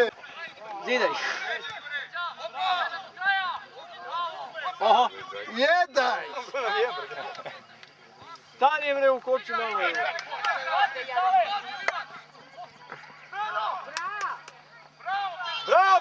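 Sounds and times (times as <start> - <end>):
voices calling out: 0.0 - 16.0.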